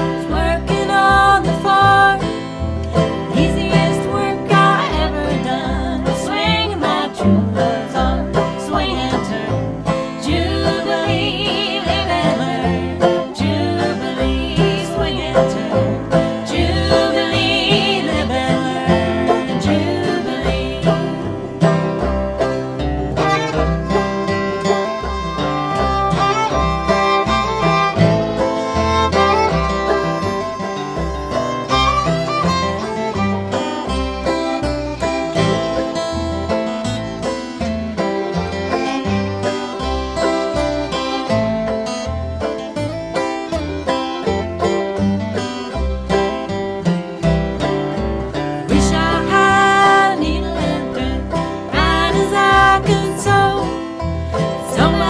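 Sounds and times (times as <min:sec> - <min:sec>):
acoustic guitar: 0:00.0 - 0:55.0
banjo: 0:00.0 - 0:55.0
fiddle: 0:00.0 - 0:55.0
upright bass plucking: 0:00.0 - 0:55.0.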